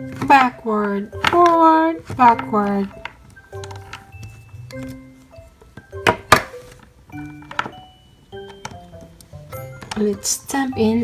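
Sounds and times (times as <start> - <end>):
light background music: 0.0 - 11.0
plastic tools knocking on table: 5.8 - 6.6.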